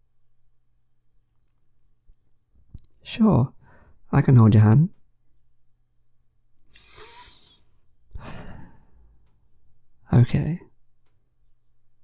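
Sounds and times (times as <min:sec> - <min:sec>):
man breathing: 0:03.6 - 0:04.0, 0:06.8 - 0:09.3.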